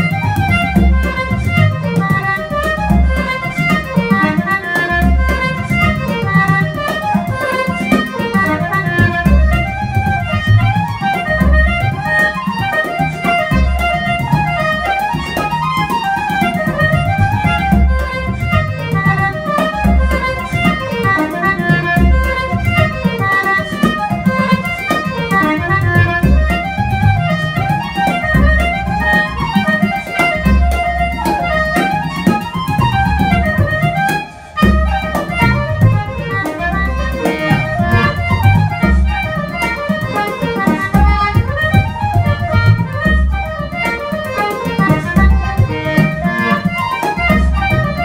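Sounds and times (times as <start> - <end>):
concertina: 0.0 - 48.0
flute: 6.9 - 25.2, 25.9 - 44.7.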